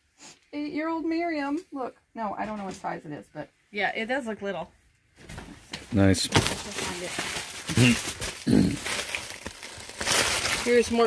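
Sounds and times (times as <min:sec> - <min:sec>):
plastic packaging rustling: 0:05.8 - 0:11.0
short low vocal sound: 0:08.5 - 0:08.8.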